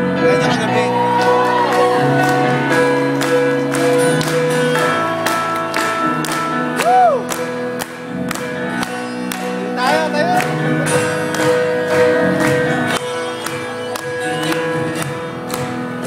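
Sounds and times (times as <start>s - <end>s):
live pop band playing: 0.0s - 16.0s.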